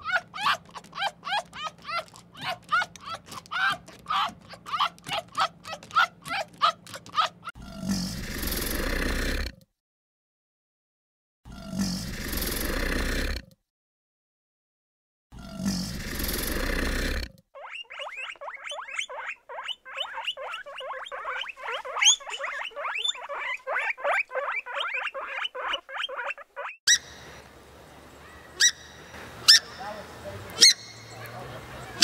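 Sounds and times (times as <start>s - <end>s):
guinea pigs squeaking: 0.0s - 7.5s, 17.6s - 27.1s, 29.5s - 32.0s
crocodile rasping hiss: 7.8s - 9.5s, 11.7s - 13.4s, 15.5s - 17.3s
bird giving sharp short calls: 30.6s - 31.3s.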